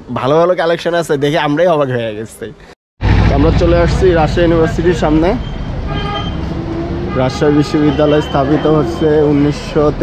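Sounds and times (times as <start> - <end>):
road traffic noise: 0.0 - 10.0
vehicle horn: 5.9 - 9.4.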